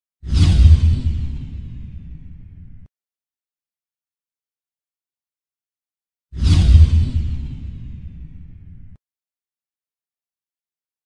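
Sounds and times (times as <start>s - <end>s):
whoosh: 0.2s - 2.9s, 6.4s - 9.0s.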